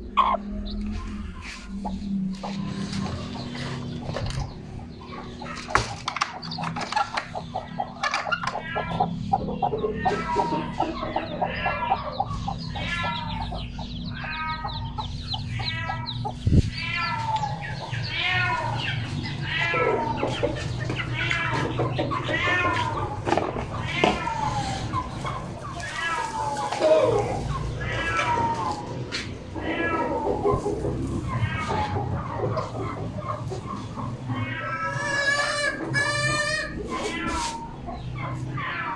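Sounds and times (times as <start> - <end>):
chicks peeping: 0.0 - 38.9
hen clucking low: 0.0 - 38.9.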